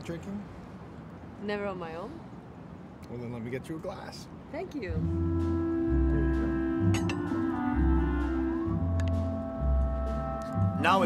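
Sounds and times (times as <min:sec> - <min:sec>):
deep bass notes: 0:04.9 - 0:11.0
orchestral music: 0:05.0 - 0:11.0.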